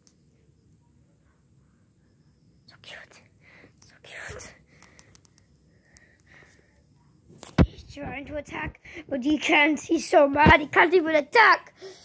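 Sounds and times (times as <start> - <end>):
breathy whisper: 2.6 - 8.0
small clicks: 4.7 - 6.4.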